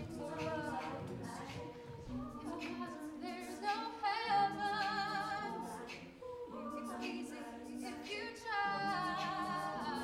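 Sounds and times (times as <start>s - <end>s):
female a cappella group singing: 0.0s - 10.0s.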